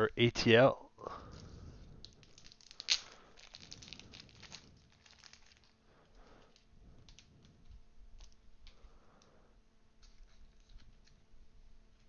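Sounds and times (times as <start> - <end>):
sharp foil crackle: 1.1 - 8.9
foil wrappers crinkling: 1.1 - 9.3.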